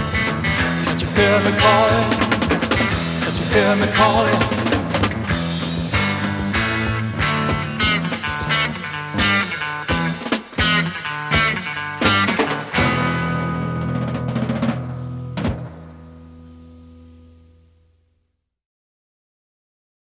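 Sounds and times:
electric guitar: 0.0 - 17.8
bass guitar: 0.0 - 18.3
drum hits: 12.1 - 15.8.

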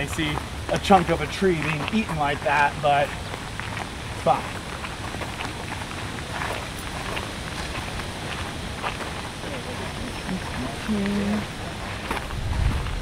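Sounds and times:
footsteps crunching on gravel: 0.0 - 13.0
steady noisy background: 0.0 - 13.0.

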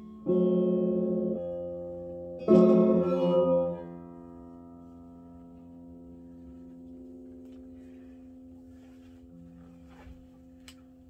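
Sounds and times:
electric guitar chord ringing: 0.0 - 8.9.

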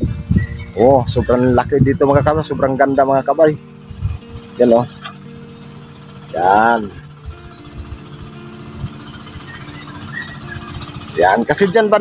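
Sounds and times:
small engine humming: 0.0 - 12.0.

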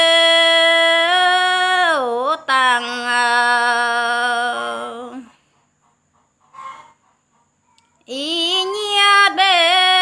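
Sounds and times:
chicken call: 6.4 - 7.5.

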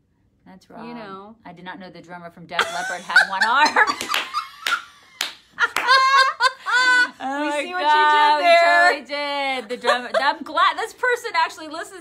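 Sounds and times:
people laughing hard: 5.6 - 7.2.

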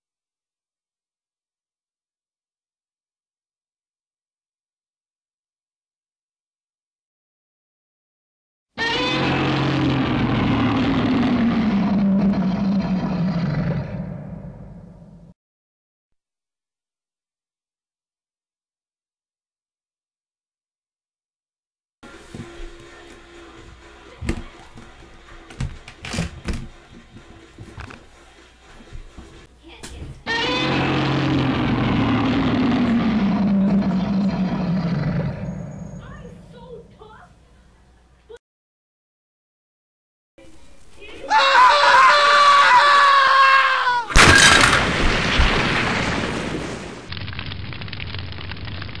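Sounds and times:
monster roar: 8.8 - 15.2, 30.3 - 35.7.

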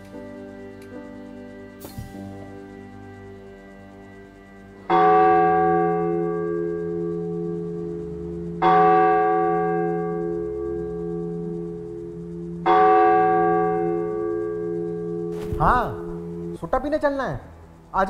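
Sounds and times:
low music drone: 0.0 - 18.0.

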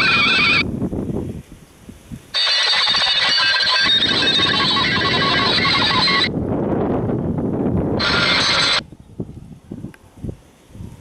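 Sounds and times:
shifting electronic radio tones: 0.0 - 0.7, 2.4 - 6.3, 8.0 - 8.8.

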